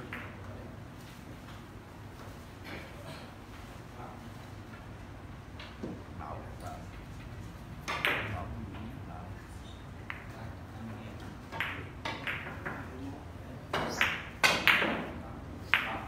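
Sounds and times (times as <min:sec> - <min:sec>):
billiard balls clicking: 0:11.5 - 0:12.9.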